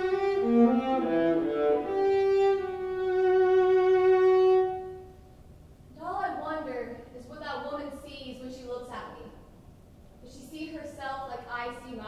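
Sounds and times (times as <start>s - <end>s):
violin long bowed note: 0.0s - 5.2s.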